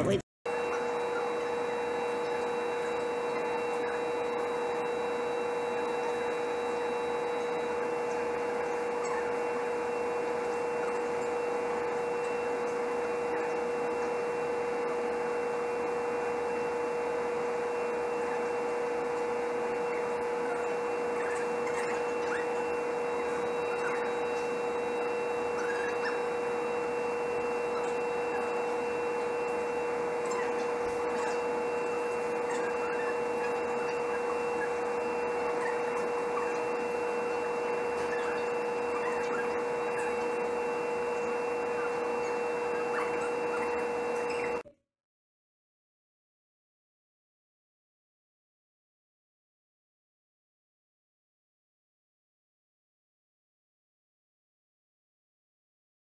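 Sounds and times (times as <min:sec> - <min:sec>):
hum of held tones: 0:00.0 - 0:44.8.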